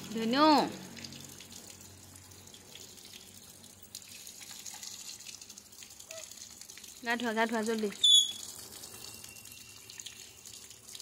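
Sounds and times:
water trickling and dripping: 0.0 - 11.0.

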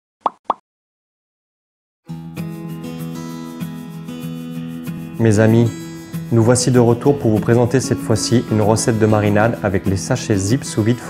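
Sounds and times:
cartoon plop sound effects: 0.2 - 0.6.

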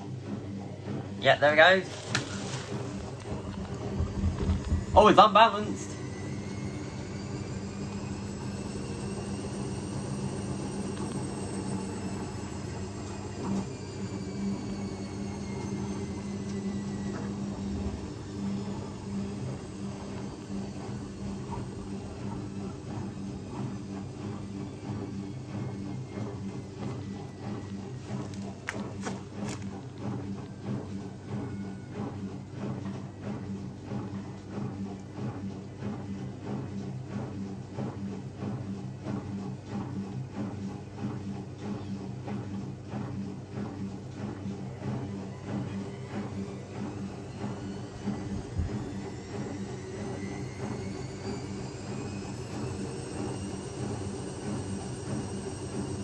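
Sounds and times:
low drum hum: 0.0 - 56.0
washing machine motor whine: 0.0 - 56.0.

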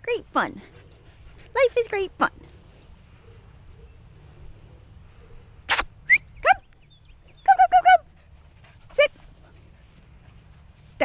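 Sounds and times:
woman calling out: 7.4 - 8.1.

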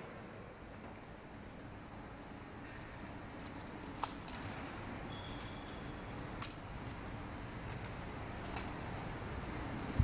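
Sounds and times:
censer chains clinking: 2.6 - 9.7.

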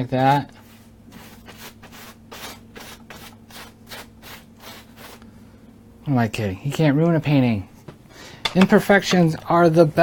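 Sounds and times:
brush rubbing on canvas: 0.2 - 5.2.

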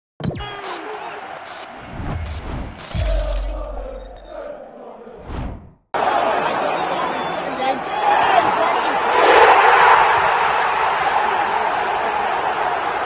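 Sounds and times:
crashing hits: 1.3 - 4.5.

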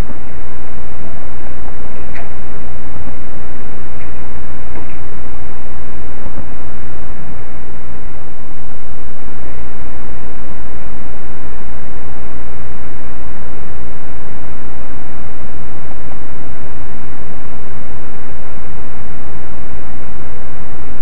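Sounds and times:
loud steady hiss: 0.0 - 21.0
low hum: 0.0 - 21.0.

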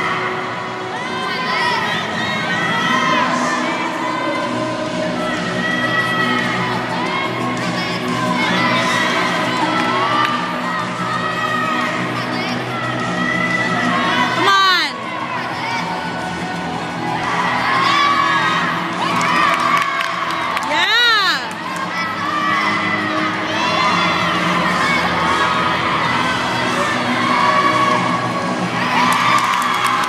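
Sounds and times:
crowd cheering and shouting: 0.0 - 30.0
loud high cheer: 0.0 - 30.0.

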